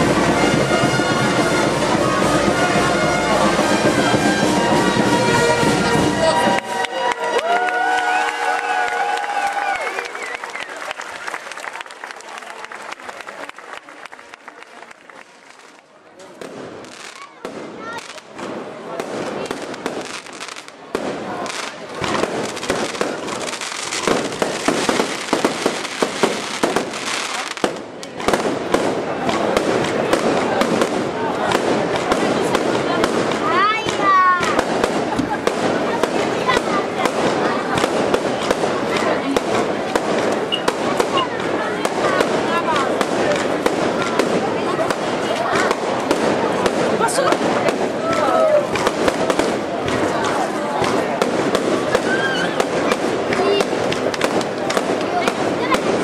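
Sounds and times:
fireworks bursting: 0.0 - 10.7, 15.5 - 56.0
fireworks crackling: 0.0 - 56.0.

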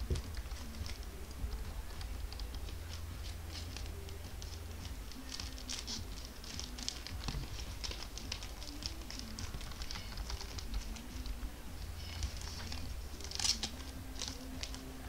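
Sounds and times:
plastic card sleeves clicking and rustling: 0.0 - 15.0
steady low hum: 0.0 - 15.0.

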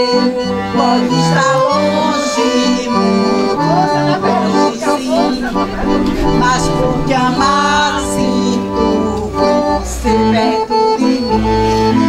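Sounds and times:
piano accordion playing lively tune: 0.0 - 5.4, 9.4 - 12.0.

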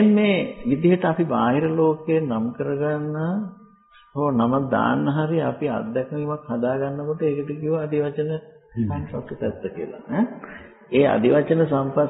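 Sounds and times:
man speaking: 0.0 - 3.5, 4.2 - 12.0.

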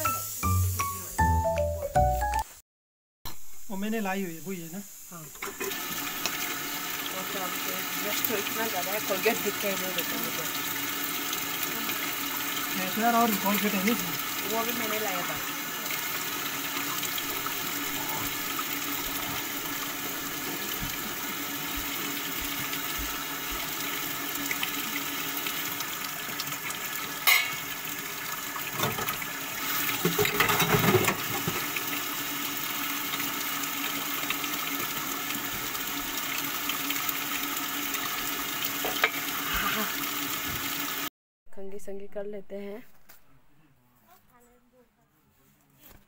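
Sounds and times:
water running: 0.0 - 1.4, 3.6 - 41.1.

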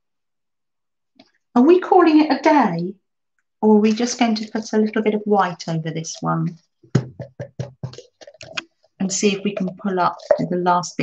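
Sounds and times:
plastic bottle shaken clicking: 6.9 - 8.7.

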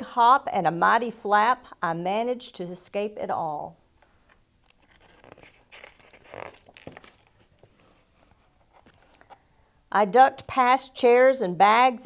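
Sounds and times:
book pages turning: 4.2 - 9.4.

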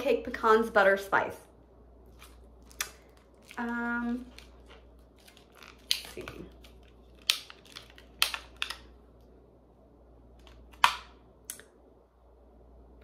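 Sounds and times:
plastic pack clicking and cracking: 2.2 - 9.0, 10.4 - 11.2.

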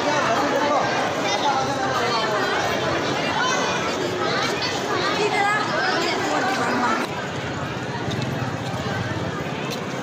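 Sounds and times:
busy street hubbub: 0.0 - 10.0
crowd chatter: 0.0 - 10.0.

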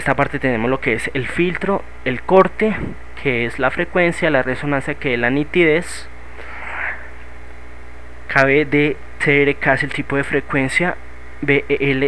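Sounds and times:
low electrical hum with hiss: 0.0 - 12.0.

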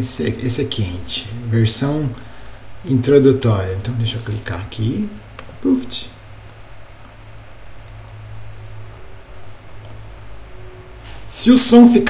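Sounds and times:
faint background hiss: 0.0 - 12.0
low steady hum: 0.0 - 12.0.

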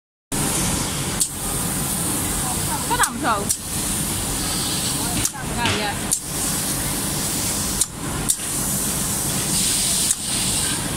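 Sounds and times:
cutting machine whirring hiss: 0.4 - 10.9.

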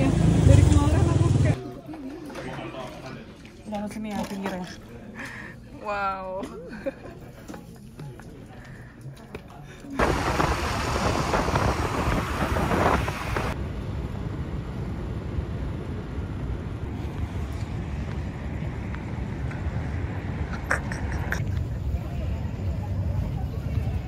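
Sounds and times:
low rumble of traffic: 0.0 - 1.6, 10.0 - 24.0
wind buffeting microphone: 10.0 - 13.6.

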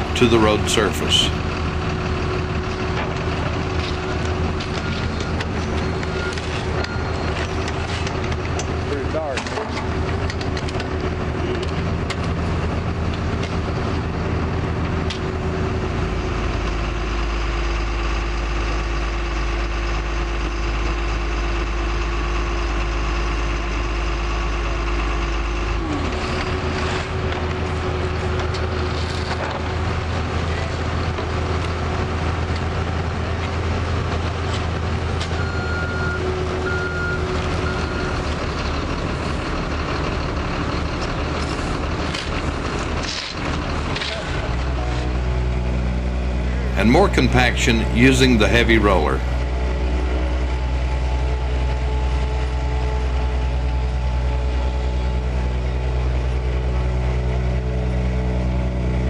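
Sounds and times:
diesel engines of construction machinery: 0.0 - 59.0.

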